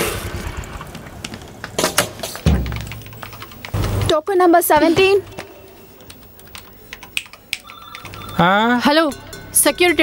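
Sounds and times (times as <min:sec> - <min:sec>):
sharp clicks and knocks: 0:00.9 - 0:04.2
dull thumps: 0:02.4 - 0:03.2.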